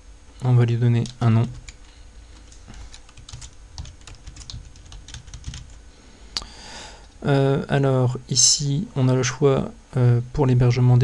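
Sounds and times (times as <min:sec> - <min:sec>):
computer keyboard typing: 0:00.9 - 0:05.8.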